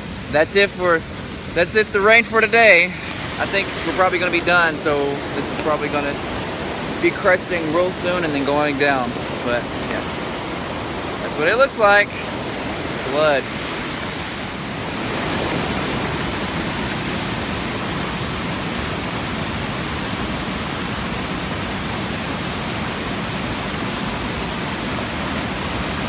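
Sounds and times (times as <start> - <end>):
flooded creek rushing: 0.0 - 26.0.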